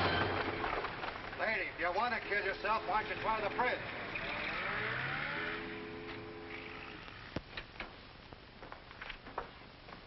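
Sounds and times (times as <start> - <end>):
steady held tones: 2.2 - 7.4
car engine revving: 2.6 - 7.3.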